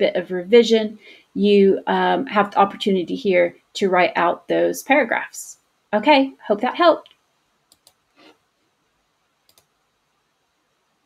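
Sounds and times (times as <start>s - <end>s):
computer mouse clicks: 7.1s - 8.4s, 9.4s - 9.8s.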